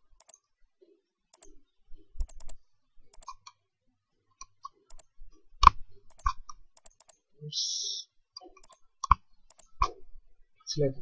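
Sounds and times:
computer mouse buttons clicking: 0.0 - 0.5, 1.3 - 1.6, 2.2 - 3.6, 4.4 - 7.2, 8.6 - 10.0.

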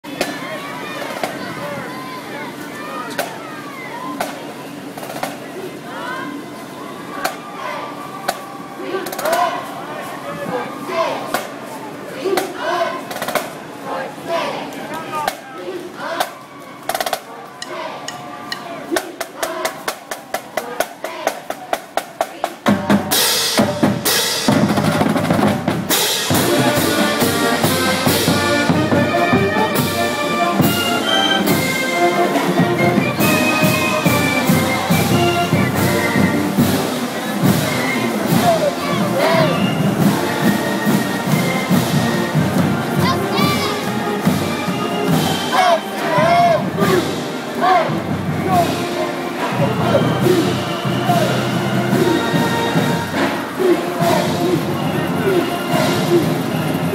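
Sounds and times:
snare and bass drums: 19.0 - 45.6
brass playing a tune: 25.9 - 56.9.

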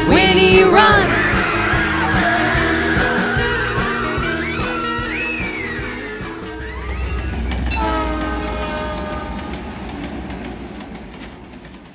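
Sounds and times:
rock song with wailing tones: 0.0 - 9.2
train horn: 0.6 - 9.8
low rumble: 5.9 - 11.2.

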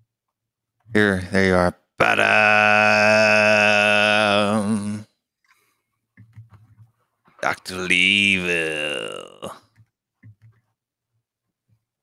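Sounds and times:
man singing a long low note: 2.0 - 5.1.

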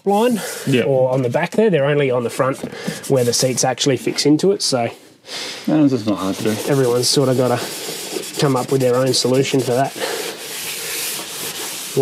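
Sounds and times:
cloth rag rubbing on metal: 2.2 - 4.8, 5.7 - 12.0.

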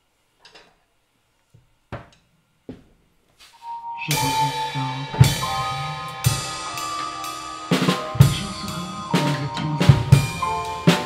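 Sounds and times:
music: 3.5 - 11.0.

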